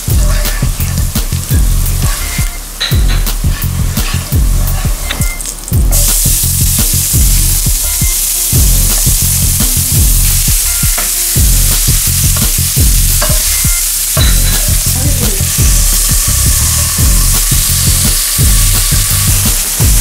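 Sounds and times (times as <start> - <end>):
onion sizzling in hot oil: 0.0 - 20.0.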